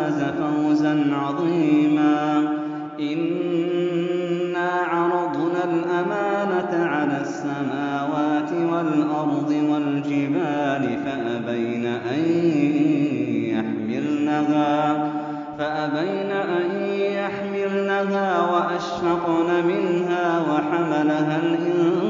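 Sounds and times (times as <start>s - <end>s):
man chanting melodic recitation: 0.0s - 22.0s.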